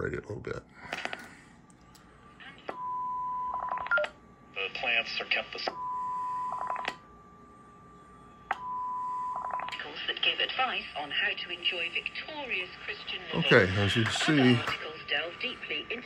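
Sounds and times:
garbled voice-like audio: 0:13.4 - 0:14.8.

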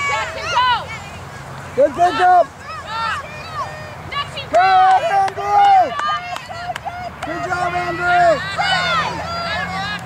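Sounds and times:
high-pitched voices shouting: 0:01.9 - 0:10.0.

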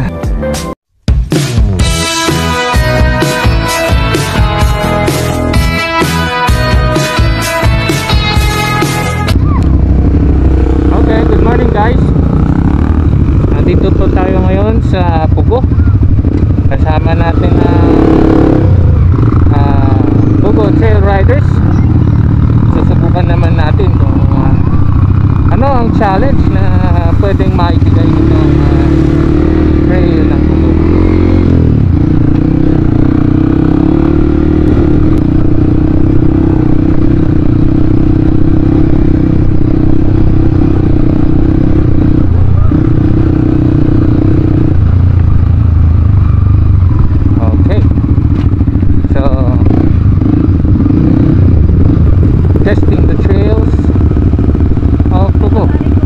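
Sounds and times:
dirt bike engine running: 0:01.1 - 0:56.0.

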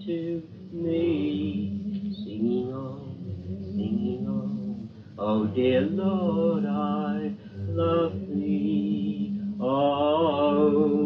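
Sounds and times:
voices chanting a hymn: 0:00.0 - 0:11.0.

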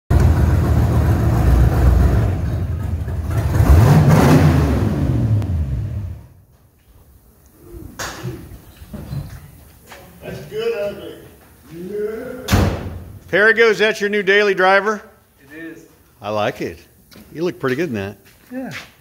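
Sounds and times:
car engine revving: 0:00.1 - 0:06.4.

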